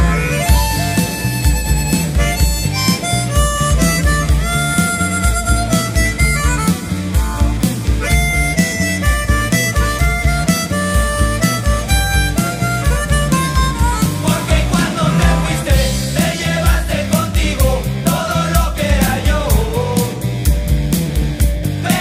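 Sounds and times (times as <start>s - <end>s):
harmonica solo: 0.0s - 16.4s
bass and drum beat: 0.0s - 22.0s.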